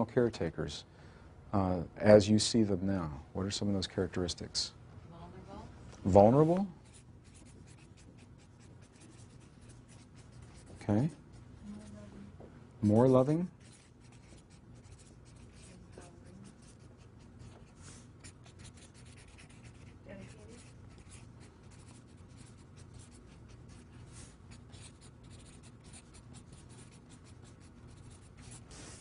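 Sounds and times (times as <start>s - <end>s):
marker scratching on paper: 6.8s - 12.1s, 12.8s - 29.0s.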